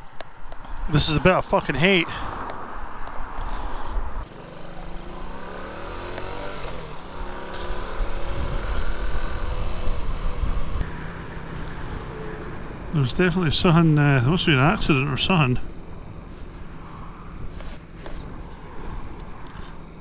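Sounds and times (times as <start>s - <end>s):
motorcycle engine pulling away: 4.2s - 20.0s
wind on microphone: 7.6s - 10.8s.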